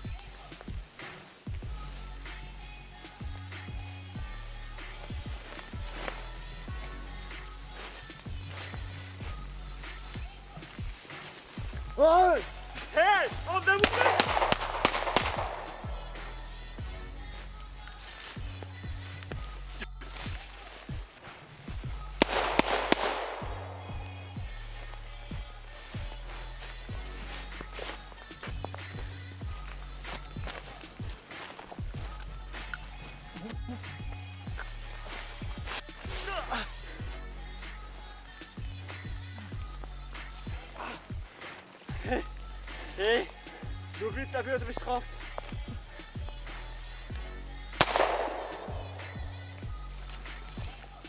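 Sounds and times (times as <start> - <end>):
background music: 0.0 - 51.0
gunshot bang with echo: 47.8 - 48.8.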